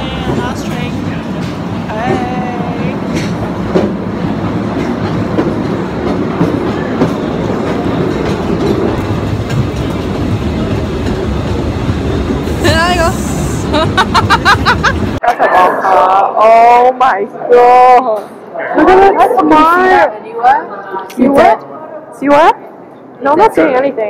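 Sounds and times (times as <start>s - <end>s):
voices: 0.0s - 3.4s, 12.5s - 22.6s
train running on track: 0.0s - 15.2s.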